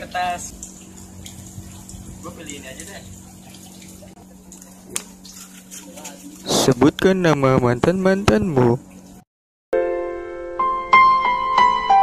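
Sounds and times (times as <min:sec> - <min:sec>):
low hum: 0:00.0 - 0:09.2.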